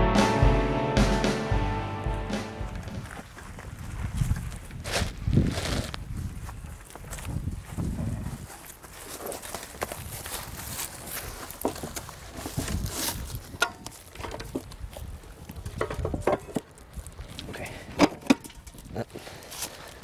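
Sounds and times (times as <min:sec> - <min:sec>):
footsteps on dirt: 0:01.9 - 0:17.8.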